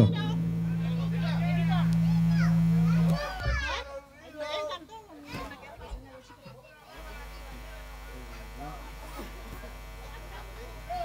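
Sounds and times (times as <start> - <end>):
low tone drone: 0.0 - 3.8, 7.0 - 11.0
children's voices chattering: 0.0 - 5.4.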